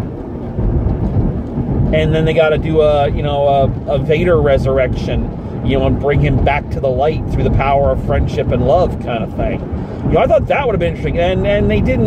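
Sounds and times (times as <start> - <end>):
car road and engine rumble: 0.0 - 12.0.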